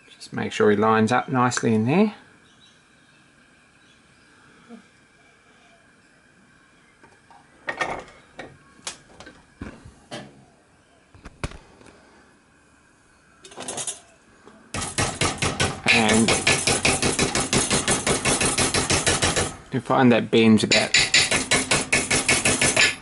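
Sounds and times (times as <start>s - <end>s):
rapid hammer blows on copper: 14.7s - 19.7s, 20.7s - 23.0s
knocks and clanks at a vise: 14.8s - 19.6s, 20.7s - 23.0s.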